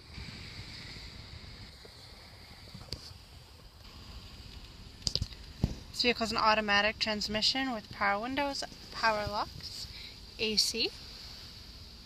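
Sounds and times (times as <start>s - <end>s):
car cabin rumble and hiss: 0.0s - 12.0s
faint clicks and knocks: 4.5s - 6.0s.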